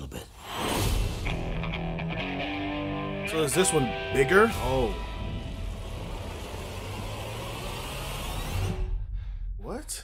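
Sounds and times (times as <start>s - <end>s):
short rising tone: 4.5s - 8.9s.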